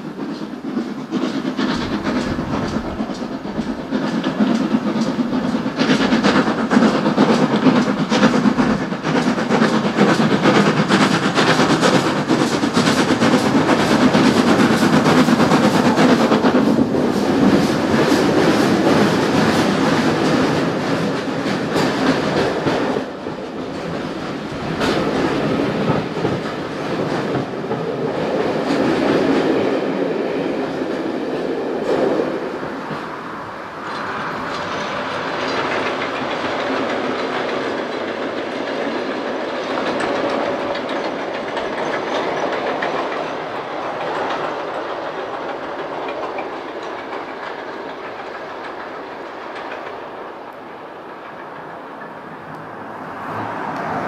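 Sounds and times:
train rumble: 0:00.0 - 0:54.0
train wheels clickety-clack: 0:00.0 - 0:54.0.

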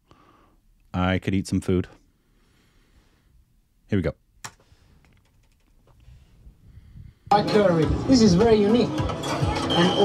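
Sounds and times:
computer keyboard clicks and taps: 0:04.4 - 0:05.8.

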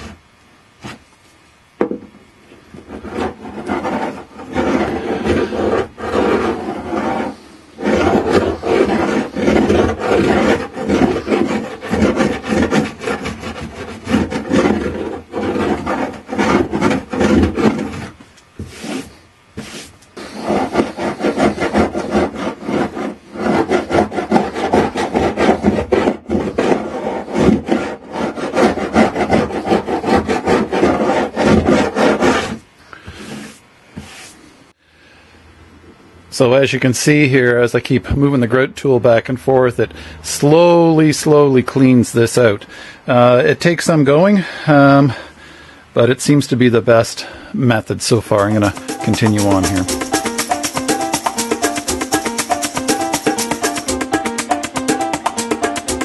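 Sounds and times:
grout tool scraping wood seams: 0:02.7 - 0:34.4, 0:48.3 - 0:56.0.

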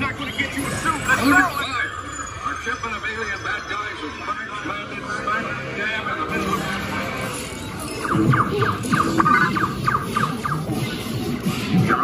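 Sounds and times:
ride soundtrack music: 0:00.0 - 0:12.0
rapid electronic zaps: 0:06.4 - 0:12.0.

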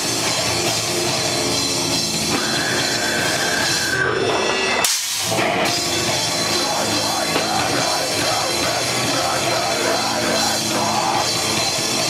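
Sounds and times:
distorted guitar: 0:00.0 - 0:12.0
heavy rock band playing: 0:00.0 - 0:12.0.

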